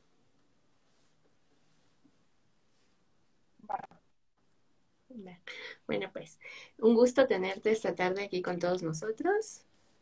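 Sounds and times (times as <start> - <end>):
woman speaking over video call: 5.1 - 9.7.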